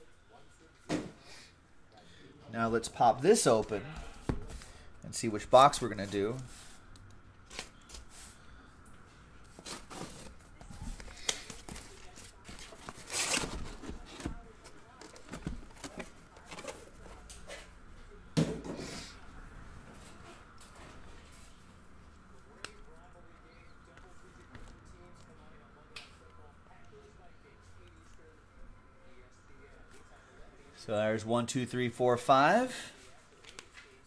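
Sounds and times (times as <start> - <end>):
cardboard rustling: 9.5 - 17.2.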